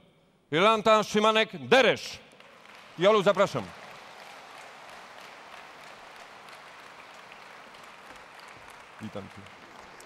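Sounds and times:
audience applauding: 0:02.4 - 0:10.0.

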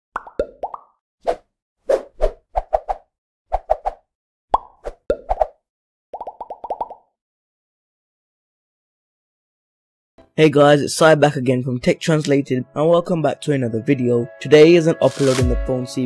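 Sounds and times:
cartoon pop sound effects: 0:04.5 - 0:05.4.

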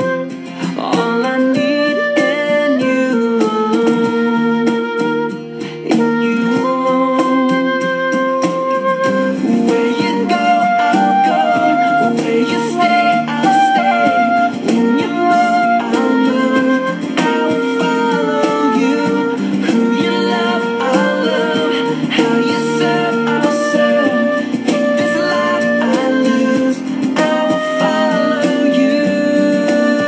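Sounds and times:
flute playing flowing melody: 0:00.0 - 0:30.0
instrumental accompaniment: 0:00.0 - 0:30.0.

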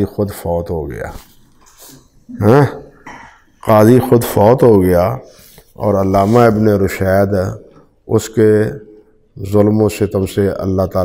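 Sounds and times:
man's wordless vocal sound: 0:02.3 - 0:04.9.

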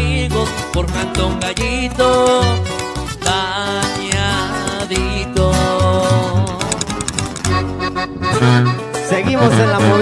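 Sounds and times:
plucked strings over bass: 0:00.0 - 0:10.0.

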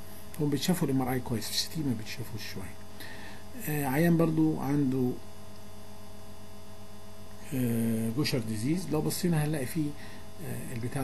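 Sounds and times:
electrical mains hum: 0:00.0 - 0:11.0
person speaking: 0:03.6 - 0:05.2, 0:07.4 - 0:11.0.

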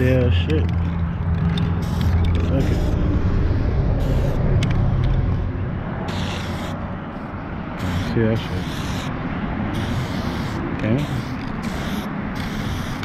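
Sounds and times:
vehicle engine humming: 0:00.0 - 0:13.0
spray can hissing: 0:01.8 - 0:04.4, 0:06.1 - 0:06.8, 0:07.8 - 0:09.1, 0:09.7 - 0:13.0.

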